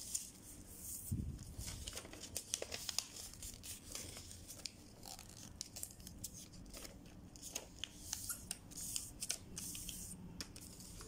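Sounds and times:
paper crinkling and rustling: 0.0s - 11.0s.

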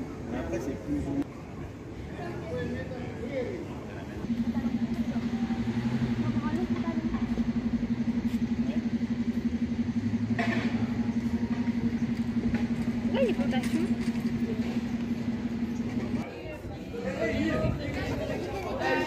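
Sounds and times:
engine idling: 4.2s - 16.3s.

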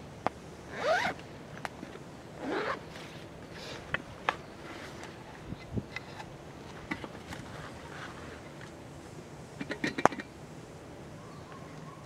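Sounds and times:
zipper pulled open: 0.7s - 1.2s, 2.4s - 3.8s.

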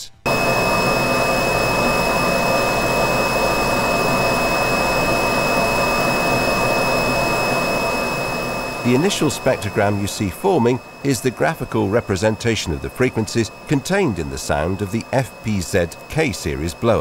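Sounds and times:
blower rushing with whistle: 0.3s - 17.0s.

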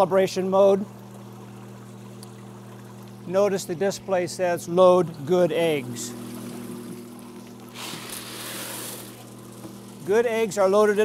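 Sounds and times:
steady low hum: 0.0s - 11.0s
water trickling: 0.0s - 11.0s
rush of poured water: 6.1s - 10.0s.

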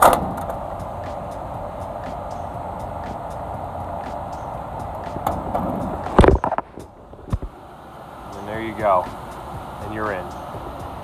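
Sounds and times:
steady rushing hum: 0.0s - 11.0s.

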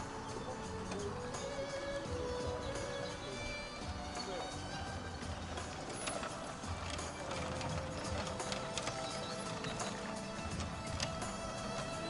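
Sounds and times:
background music: 0.0s - 12.0s
horses trotting hoofbeats: 0.0s - 12.0s.

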